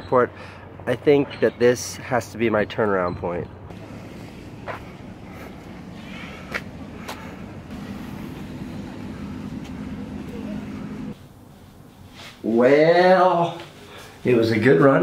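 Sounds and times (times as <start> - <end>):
wind: 0.0 - 15.0
steady low hum: 3.5 - 12.6.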